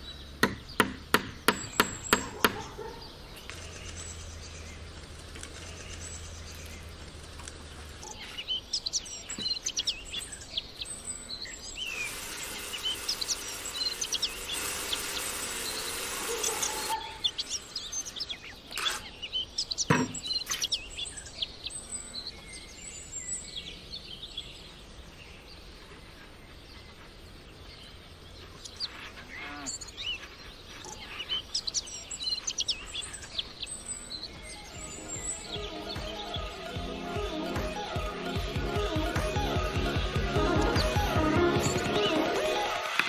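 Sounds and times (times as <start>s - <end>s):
small birds chirping: 0.0s - 43.0s
cordless drill motor running: 11.9s - 17.0s.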